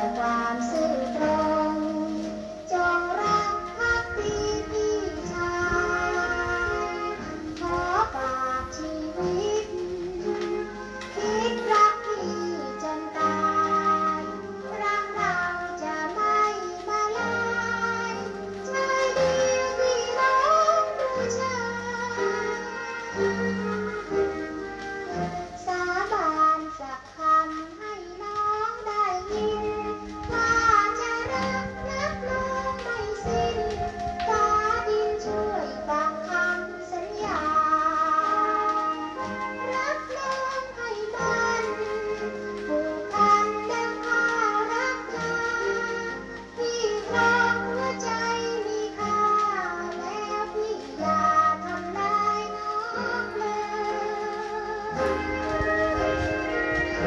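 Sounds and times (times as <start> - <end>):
instrumental accompaniment: 0.0 - 57.0
woman singing old record: 0.0 - 57.0.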